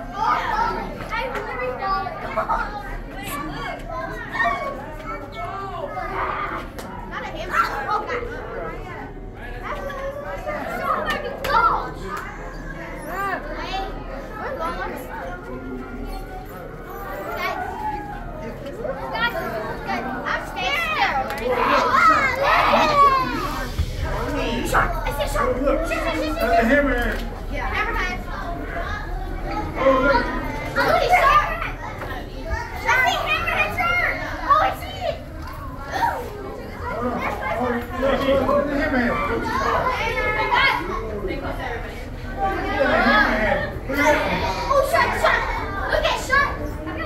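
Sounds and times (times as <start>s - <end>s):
children's voices: 0.0s - 47.0s
crowd chatter: 0.0s - 47.0s.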